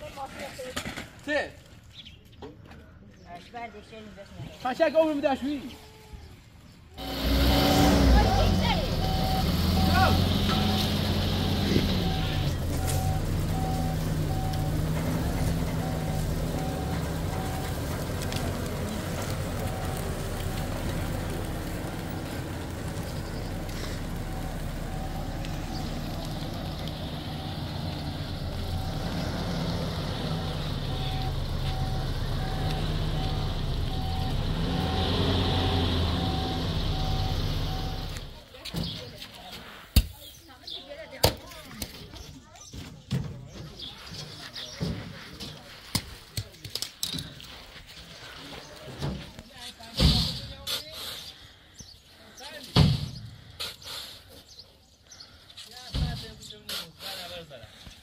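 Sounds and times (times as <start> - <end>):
reversing beeper: 7.0 - 38.4
truck engine revving: 7.0 - 38.4.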